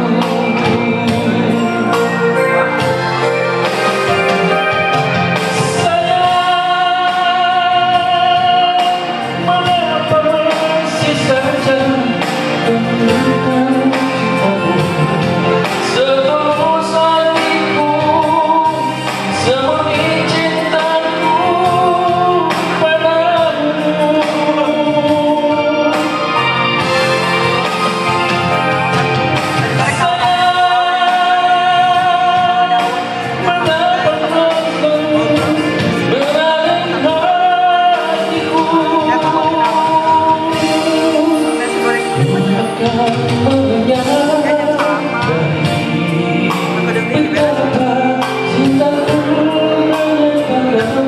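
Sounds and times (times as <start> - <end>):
instrumental accompaniment: 0.0 - 51.0
man singing through microphone: 0.0 - 51.0.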